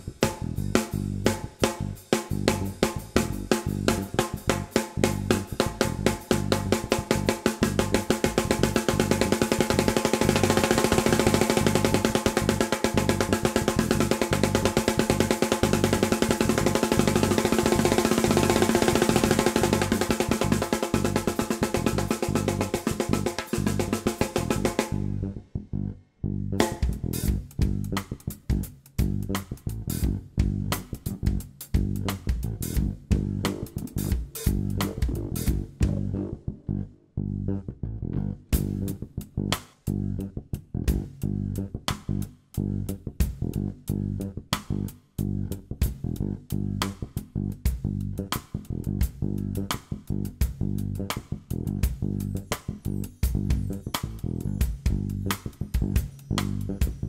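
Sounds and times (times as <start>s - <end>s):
jazz fusion band playing live: 32.0s - 36.3s.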